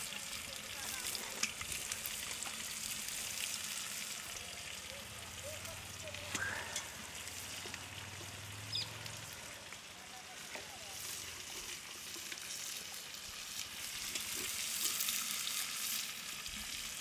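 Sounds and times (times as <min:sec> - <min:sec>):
chicken sizzling in a pot: 0:00.0 - 0:17.0.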